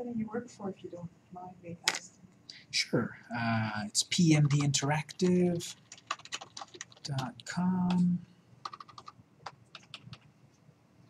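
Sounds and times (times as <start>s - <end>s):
man speaking: 2.5s - 5.8s, 7.0s - 8.2s
keyboard typing: 4.2s - 10.3s.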